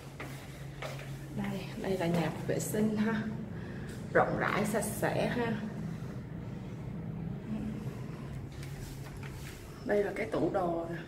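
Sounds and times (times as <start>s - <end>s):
low mechanical hum: 0.0s - 11.0s
low rumble: 1.6s - 11.0s.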